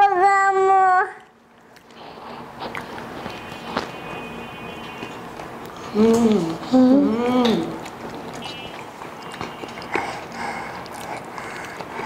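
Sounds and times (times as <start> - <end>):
mouth clicks and smacks: 1.2 - 4.1, 7.4 - 12.0
people chewing crunchy food: 1.2 - 12.0.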